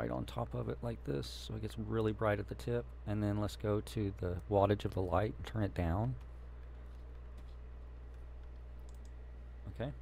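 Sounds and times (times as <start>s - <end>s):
steady low hum: 0.0s - 10.0s
mouse and keyboard clicks: 8.1s - 9.2s.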